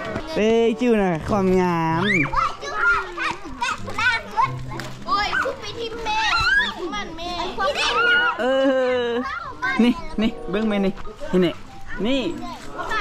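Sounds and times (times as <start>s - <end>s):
children chattering and calling out: 0.0s - 13.0s.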